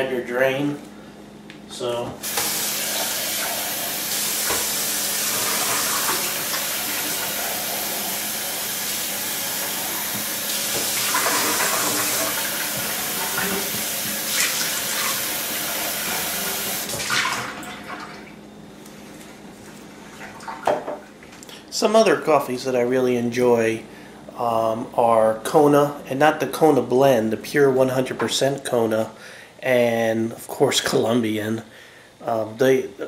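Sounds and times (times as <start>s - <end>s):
hands washed under water: 2.2s - 17.5s.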